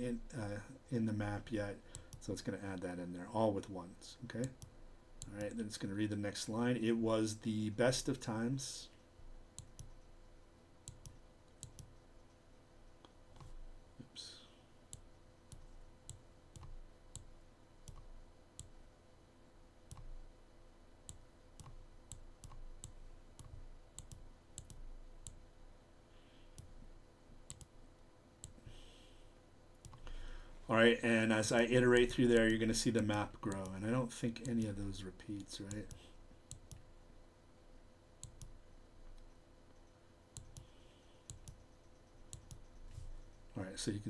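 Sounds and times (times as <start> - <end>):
computer mouse clicks: 4.4 - 5.6, 9.6 - 10.1, 10.8 - 13.6, 14.9 - 18.8, 19.9 - 20.2, 21.1 - 25.4, 26.5 - 26.8, 27.4 - 27.7, 28.4 - 28.6, 29.7 - 30.1, 32.0 - 33.8, 34.4 - 34.7, 35.4 - 36.9, 38.2 - 43.4.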